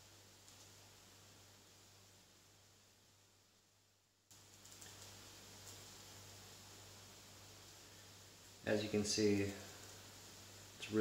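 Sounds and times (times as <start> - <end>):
toast sizzling in a pan: 4.3 - 11.0.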